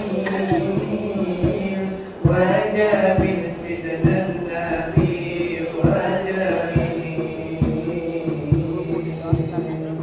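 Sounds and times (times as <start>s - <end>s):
low thumping beat: 0.0s - 9.8s
boys singing in chant-like style: 0.0s - 10.0s.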